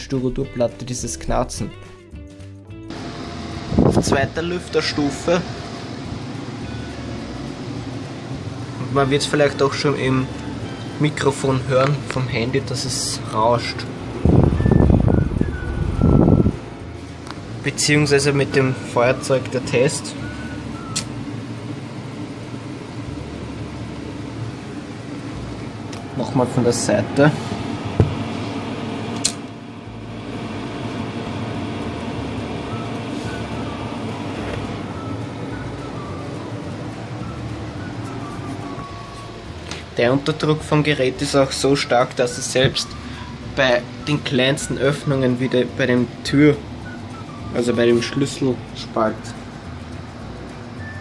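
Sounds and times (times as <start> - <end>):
air conditioner fan rushing: 0.0 - 51.0
air rushing across microphone: 3.6 - 4.4, 13.8 - 17.2
sharp click: 20.9 - 21.2, 29.2 - 29.5.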